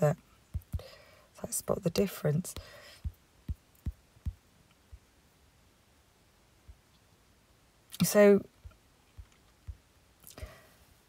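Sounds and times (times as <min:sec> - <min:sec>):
faint room hiss: 0:00.0 - 0:11.0
fingertip taps on touchscreen: 0:00.5 - 0:00.9, 0:08.6 - 0:09.8.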